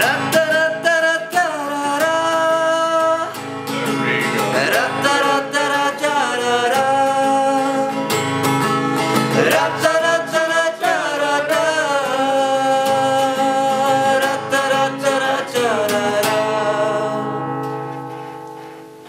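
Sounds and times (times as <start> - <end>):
men singing long notes: 0.0 - 3.3, 4.0 - 8.0, 9.2 - 17.5
acoustic guitar strumming: 0.0 - 19.0.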